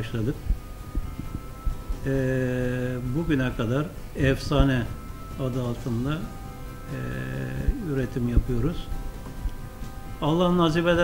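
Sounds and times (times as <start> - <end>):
faint low background noise: 0.0 - 11.0.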